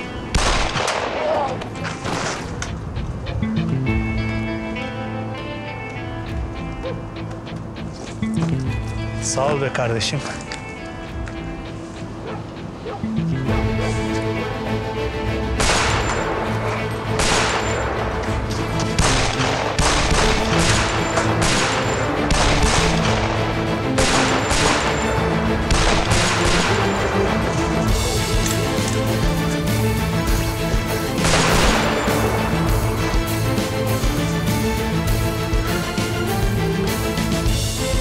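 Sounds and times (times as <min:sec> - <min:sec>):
dramatic music score: 0:00.0 - 0:38.0
pistol shots: 0:00.3 - 0:02.6, 0:15.6 - 0:16.4, 0:17.2 - 0:17.9, 0:18.9 - 0:27.3, 0:31.2 - 0:32.5.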